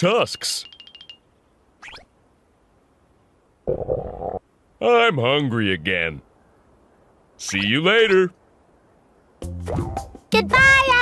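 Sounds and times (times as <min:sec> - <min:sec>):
cartoon stomach growl: 0:03.7 - 0:04.4.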